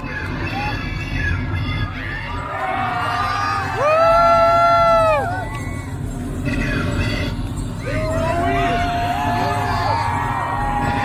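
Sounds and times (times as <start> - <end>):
concert crowd cheering: 2.3 - 5.9, 7.8 - 11.0.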